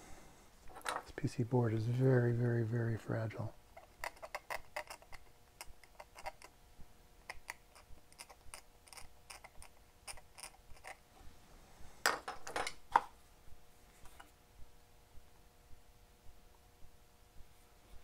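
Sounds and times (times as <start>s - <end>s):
faint steady hum: 0.0s - 18.0s.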